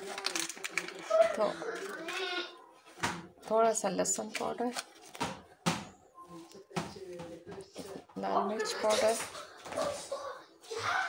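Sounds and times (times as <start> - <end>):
faint background voices: 5.5 - 11.0.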